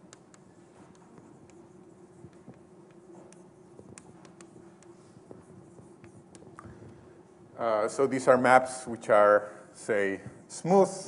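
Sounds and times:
writing scratching on board: 0.0 - 6.7
low room hum: 0.0 - 11.0.

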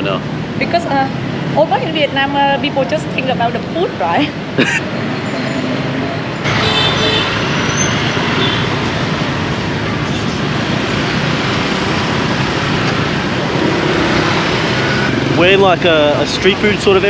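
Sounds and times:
vehicle engines and road noise: 0.0 - 17.0.

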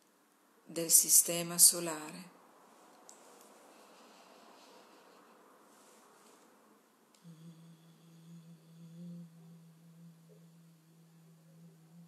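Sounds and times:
low steady droning tone: 3.6 - 12.0.

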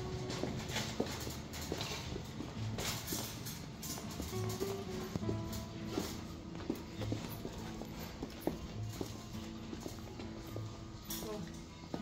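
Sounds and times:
boots clicking on tiled floor: 0.0 - 12.0
music playing: 0.0 - 12.0.

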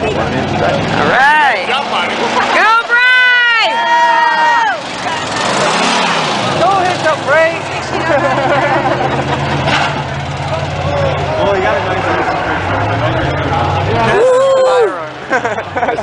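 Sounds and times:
racing truck engines running: 0.0 - 16.0
spectators shouting: 2.2 - 7.0, 10.5 - 15.3.

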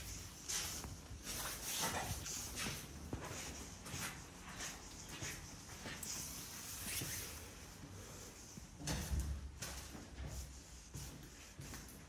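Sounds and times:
footsteps on indoor floor: 0.0 - 12.0.

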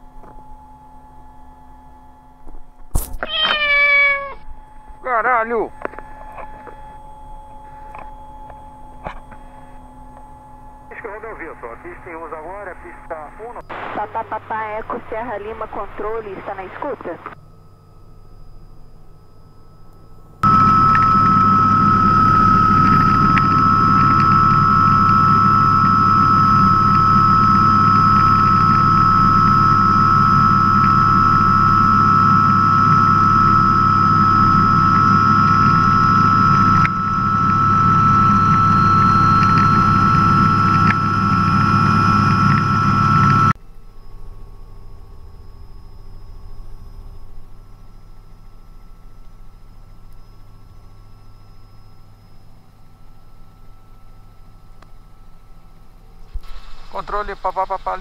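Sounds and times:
helicopter turbine whine: 0.0 - 58.0
rotor drone: 0.0 - 58.0.

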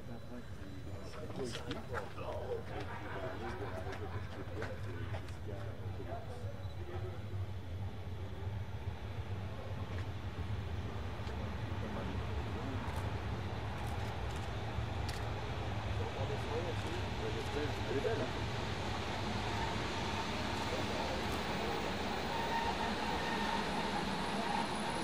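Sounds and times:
electric locomotive hum: 0.0 - 25.0.

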